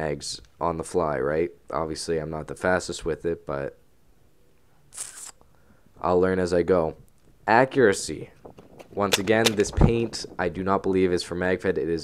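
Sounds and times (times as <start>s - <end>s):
breath: 5.4s - 6.0s.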